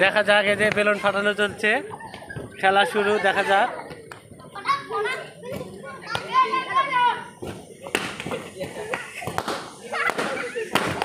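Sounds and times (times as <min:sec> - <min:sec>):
children shouting and laughing: 0:00.9 - 0:11.0.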